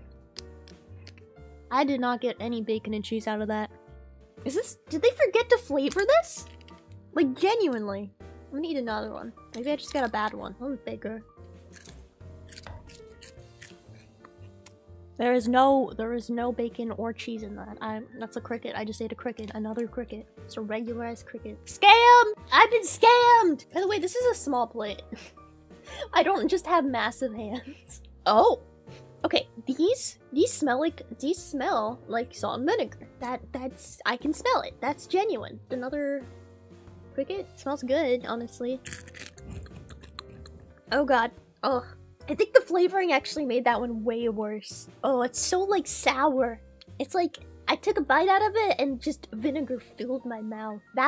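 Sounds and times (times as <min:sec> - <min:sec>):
soft background music: 0:00.0 - 0:51.0
crisp chewing crunches: 0:11.7 - 0:14.2, 0:38.8 - 0:40.7.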